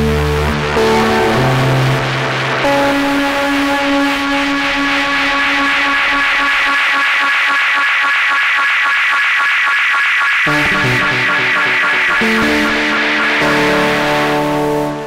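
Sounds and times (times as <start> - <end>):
electric guitar through synthesizer: 0.0 - 15.0
fast electronic pulsing: 0.7 - 15.0.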